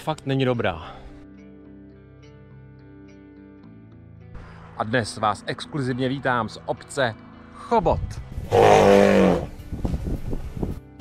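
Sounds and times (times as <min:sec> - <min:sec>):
background music: 0:00.0 - 0:11.0
elephant bellowing: 0:08.5 - 0:09.6.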